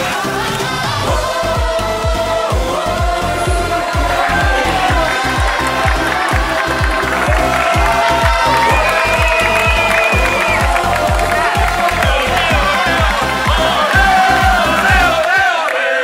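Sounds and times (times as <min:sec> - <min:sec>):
background music with fast beat: 0:00.0 - 0:15.6.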